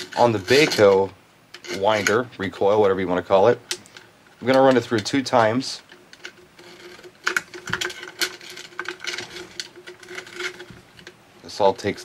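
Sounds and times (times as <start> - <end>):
cable and carabiner rattling on metal: 0.0 - 12.0
faint steady hum: 0.0 - 12.0.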